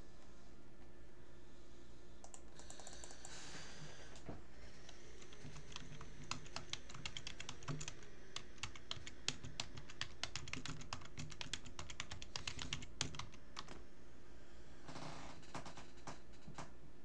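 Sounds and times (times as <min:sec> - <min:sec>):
low steady hum: 0:00.0 - 0:17.0
typing on computer keyboard: 0:02.2 - 0:03.4, 0:04.9 - 0:13.8.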